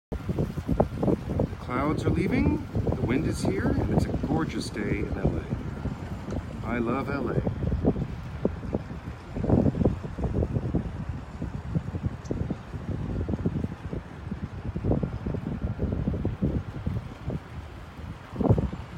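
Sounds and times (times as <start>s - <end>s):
wind buffeting microphone: 0.1s - 18.9s.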